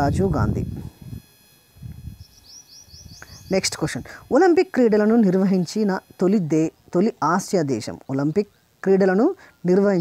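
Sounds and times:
small bird chirping: 2.0 - 4.2.

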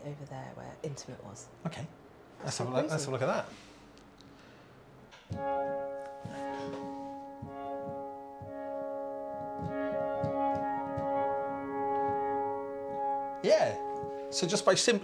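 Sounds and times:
sustained pad-like piano chords: 5.3 - 15.0.

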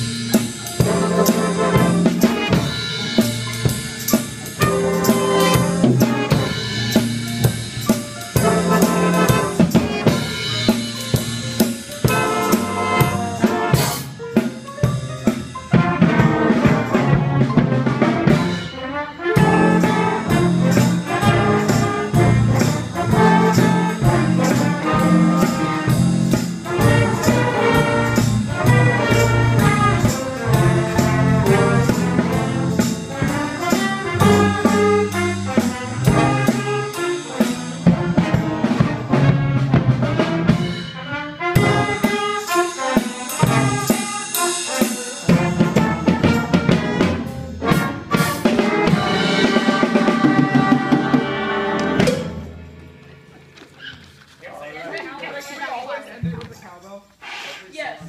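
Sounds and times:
jazz band playing: 0.0 - 54.4.

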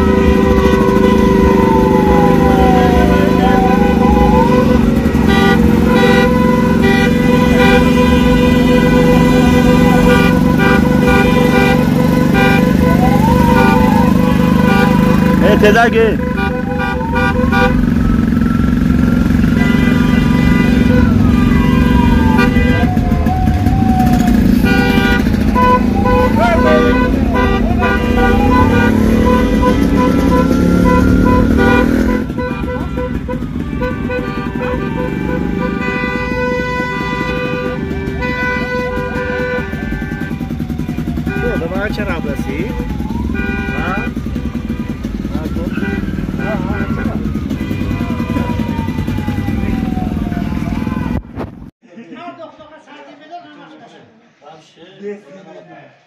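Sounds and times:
car horns honking: 0.0 - 51.0
engine and tyre noise: 0.0 - 51.8.

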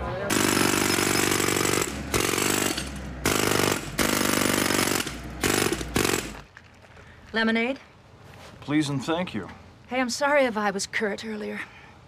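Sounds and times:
jackhammer breaking asphalt: 0.3 - 6.5.

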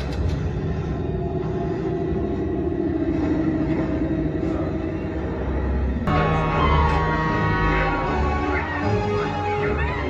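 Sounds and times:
low droning film soundtrack: 0.0 - 10.0.

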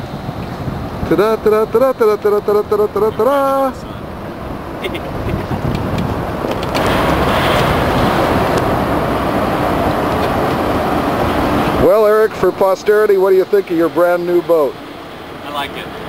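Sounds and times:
road traffic rushing overhead: 0.0 - 16.0.

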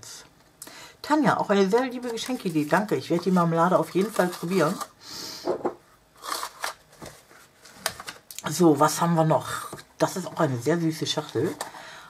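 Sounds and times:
paper rustling and crinkling: 1.7 - 4.9, 6.2 - 8.3.

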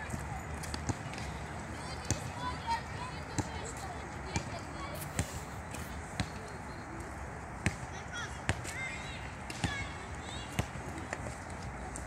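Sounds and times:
basketball bouncing on asphalt: 0.0 - 11.5
faint voices: 0.0 - 12.0.

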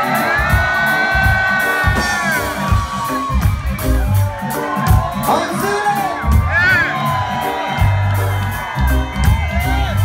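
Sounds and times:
reggae band playing live: 0.0 - 10.0.

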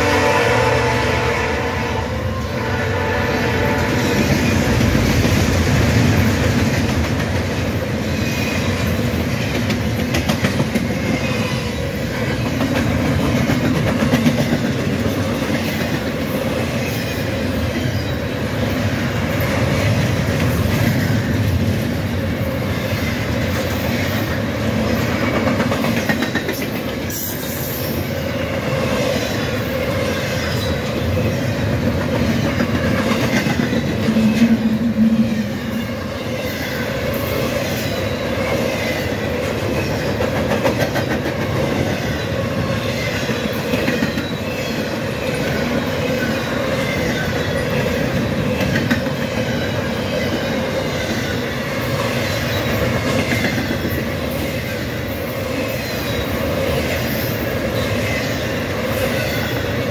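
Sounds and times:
train wheels on rail: 0.0 - 59.9.

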